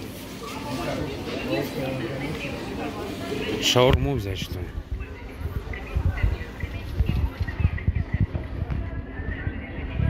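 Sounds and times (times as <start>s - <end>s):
faint voices of passers-by: 0.0s - 10.0s.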